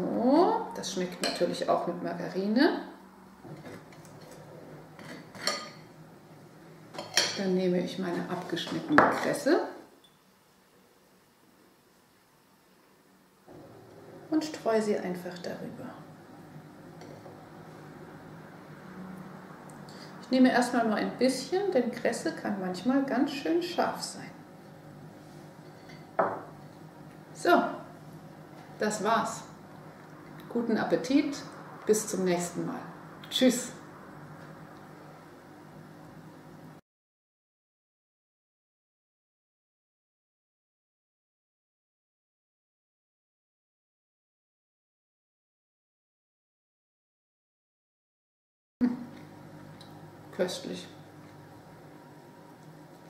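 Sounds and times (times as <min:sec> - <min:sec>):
bowl knocking on wooden table: 0:26.2 - 0:26.5.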